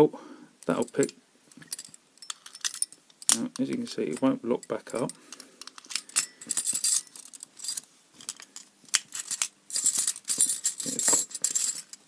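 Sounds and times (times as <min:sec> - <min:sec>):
metal keys jangling on padlock: 0:04.9 - 0:07.8, 0:09.1 - 0:12.0.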